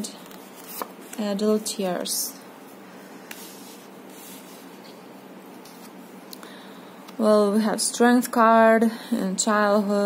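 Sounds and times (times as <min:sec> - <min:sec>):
steady background hiss: 0:00.0 - 0:10.0
cards rustling on cloth: 0:00.2 - 0:01.8.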